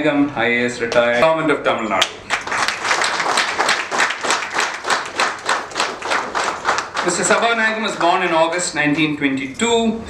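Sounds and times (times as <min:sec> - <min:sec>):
audience applauding: 0:02.3 - 0:07.7.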